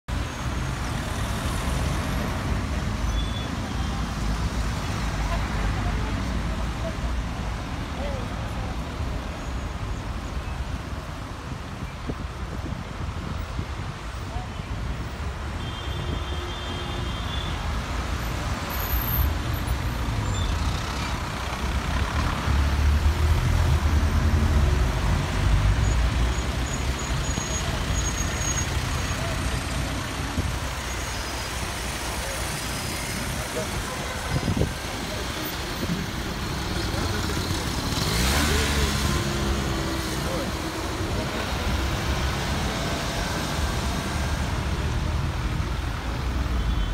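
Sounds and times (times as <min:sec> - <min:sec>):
vehicles passing: 0:00.1 - 0:46.9.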